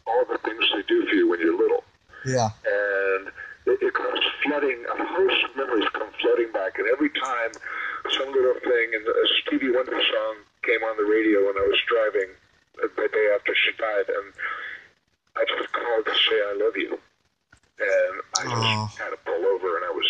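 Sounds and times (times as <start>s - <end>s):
person talking over radio: 0.2s - 8.6s, 17.8s - 19.2s.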